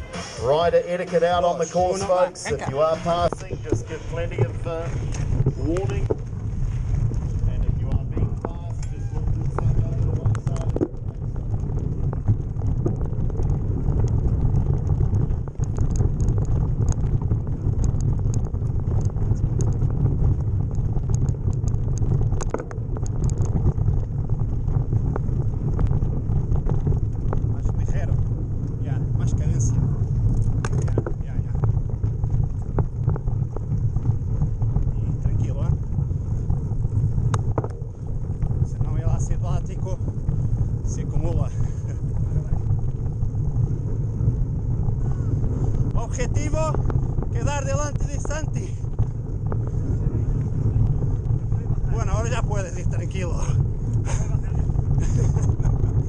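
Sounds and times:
wind buffeting microphone: 0:00.0 - 0:56.0
bike clicks and rattles: 0:02.7 - 0:56.0.

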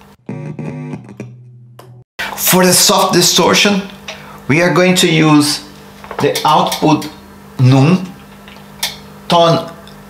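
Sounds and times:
guitar phrase: 0:00.2 - 0:02.0.

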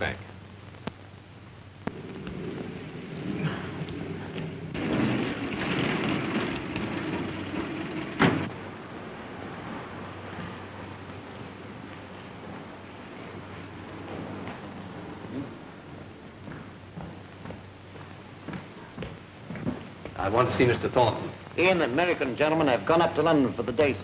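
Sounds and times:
film soundtrack hiss and rumble: 0:00.0 - 0:24.0.

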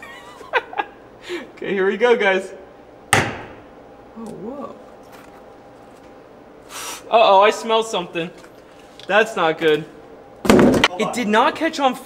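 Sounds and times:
gas venting hiss: 0:06.6 - 0:07.1.

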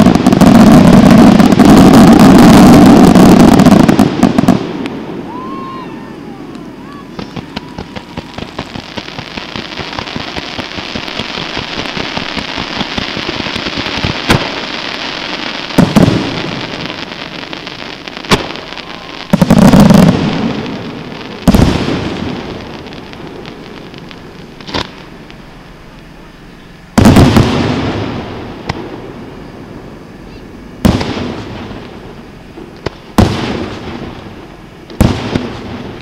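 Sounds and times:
fireworks bangs and booms: 0:00.0 - 0:36.0
fireworks crackling: 0:00.0 - 0:36.0.

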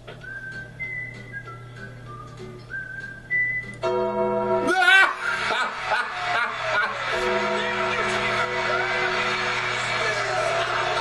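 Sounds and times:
person whistling a tune: 0:00.1 - 0:03.8.

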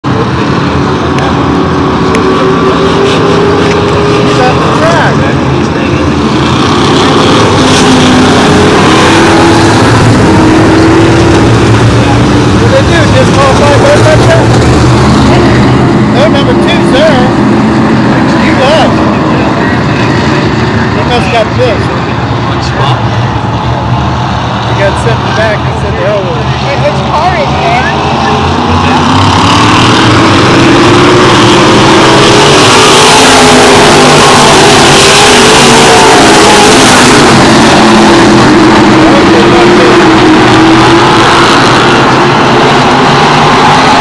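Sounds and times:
race car engines: 0:00.0 - 0:44.0.

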